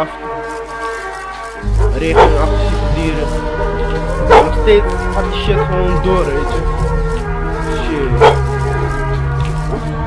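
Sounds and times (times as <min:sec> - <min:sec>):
hip-hop backing track: 0:00.6 - 0:10.0
dog bark: 0:01.8 - 0:02.5, 0:04.2 - 0:04.6, 0:08.1 - 0:08.5.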